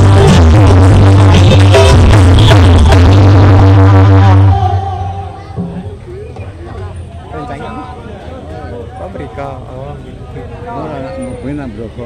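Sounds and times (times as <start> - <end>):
loud music with heavy bass: 0.0 - 5.8.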